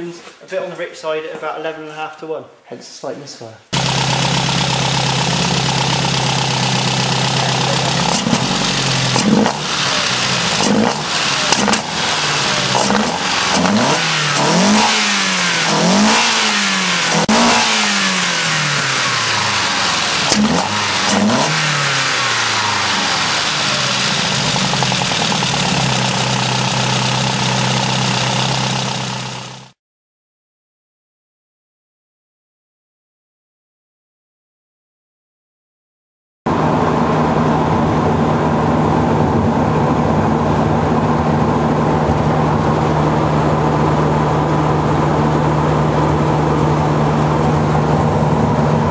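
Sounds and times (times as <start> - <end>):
car engine idling and revving: 3.8 - 29.8, 36.5 - 48.9.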